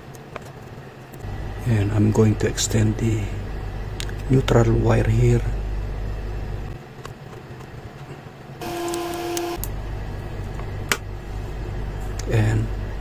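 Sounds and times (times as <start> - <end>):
steady low hum: 0.0 - 13.0
horn-like tone: 8.6 - 9.6.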